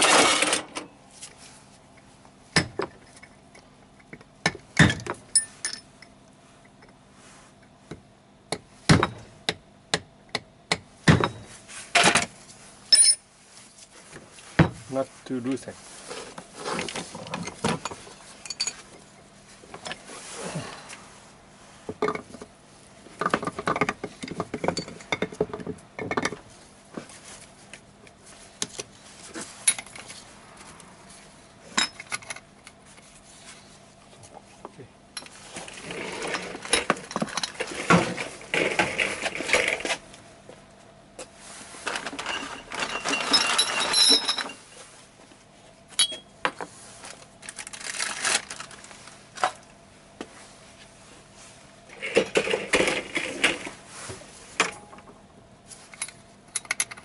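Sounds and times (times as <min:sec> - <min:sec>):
metal parts clinking and clanking: 0:00.0 - 0:00.9, 0:12.9 - 0:13.2, 0:17.2 - 0:18.9, 0:31.7 - 0:32.4, 0:35.2 - 0:39.9, 0:41.8 - 0:44.6, 0:45.9 - 0:46.3, 0:55.9 - 0:57.0.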